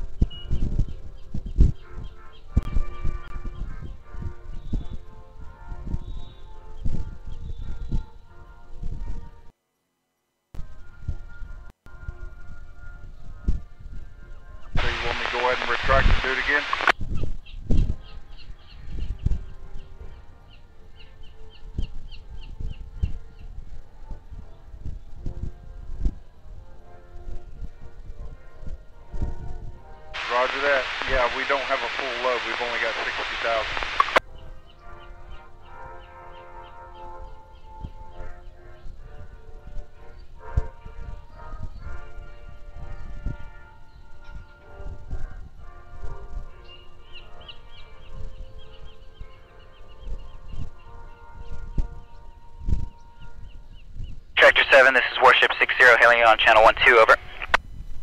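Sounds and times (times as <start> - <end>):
soft background music: 0.0 - 9.6, 10.6 - 30.8, 34.2 - 54.4
garbled radio transmission: 14.8 - 16.9, 30.2 - 34.2, 54.4 - 57.6.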